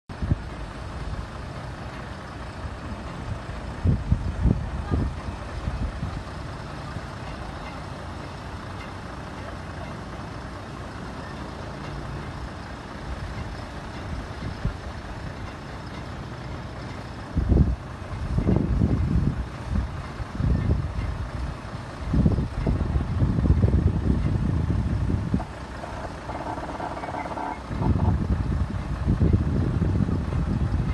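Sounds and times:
heavy low rumbles: 0.1s - 30.9s.

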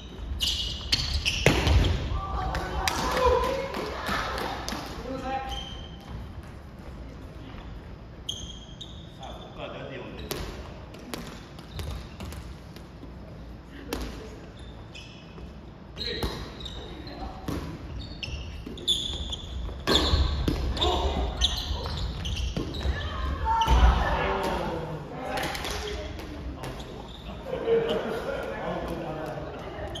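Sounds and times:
sneakers squeaking on wooden floor: 0.0s - 2.1s, 5.4s - 6.5s, 7.4s - 12.5s, 14.5s - 24.1s, 25.9s - 28.1s, 29.8s - 30.0s.

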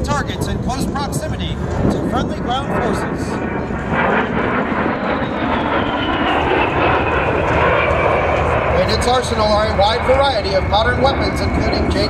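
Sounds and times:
jet engines roaring overhead: 0.0s - 12.0s.

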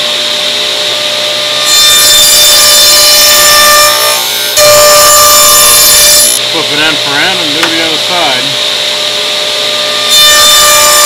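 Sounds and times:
table saw cutting wood: 0.0s - 11.0s.

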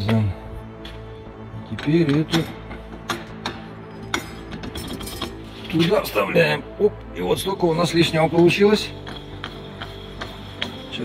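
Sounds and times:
metal knocking against metal: 1.7s - 5.5s.

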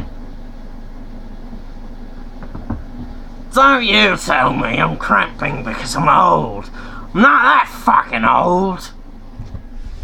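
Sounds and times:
steady low hum: 0.0s - 10.0s
man's voice: 3.5s - 9.0s.

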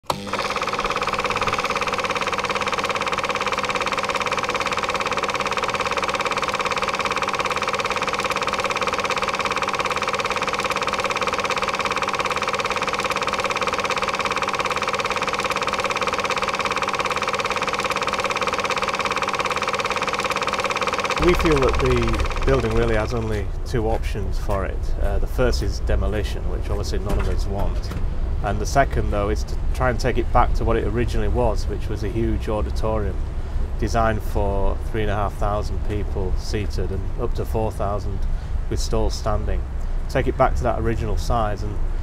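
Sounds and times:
mechanical drone with held tones: 0.0s - 26.4s.

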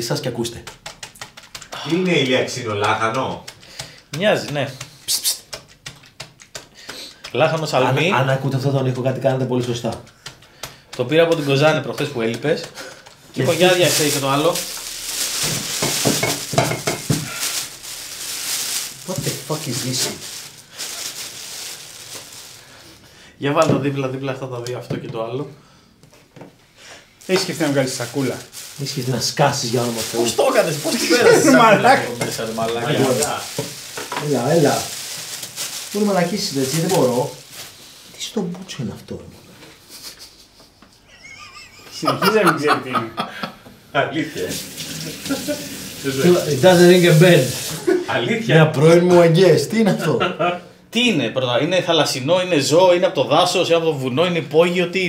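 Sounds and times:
packaging rustle: 12.9s - 23.0s, 27.2s - 37.9s, 44.4s - 48.0s
plastic bag crinkling: 12.9s - 23.0s, 27.2s - 38.0s, 44.3s - 48.0s
man exclaiming: 30.4s - 32.2s.

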